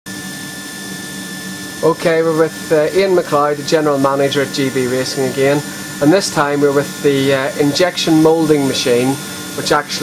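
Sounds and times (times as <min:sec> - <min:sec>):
moulding machine humming: 0:00.1 - 0:10.0
man speaking: 0:01.8 - 0:10.0.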